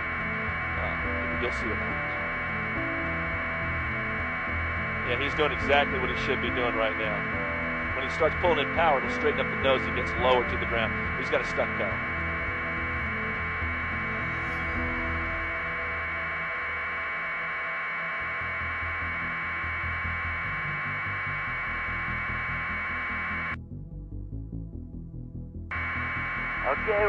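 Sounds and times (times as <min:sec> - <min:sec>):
low uneven throbbing: 0:00.0 - 0:23.6, 0:25.7 - 0:27.0
radio channel hiss: 0:00.0 - 0:23.6, 0:25.7 - 0:27.0.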